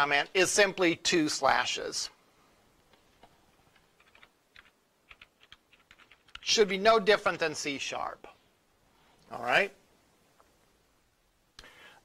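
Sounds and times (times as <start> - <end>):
computer keyboard key clicks: 4.0 - 6.4.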